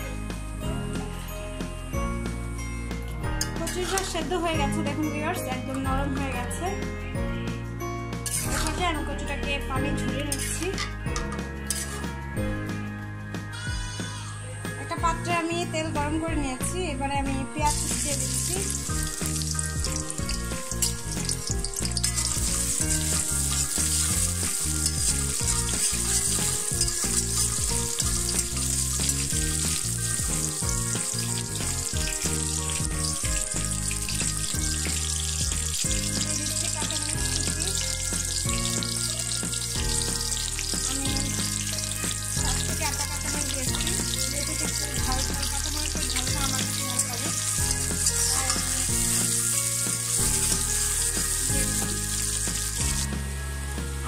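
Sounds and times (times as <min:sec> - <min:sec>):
onions sizzling in oil: 0:17.6 - 0:53.3
spatula stirring in wok: 0:17.8 - 0:53.0.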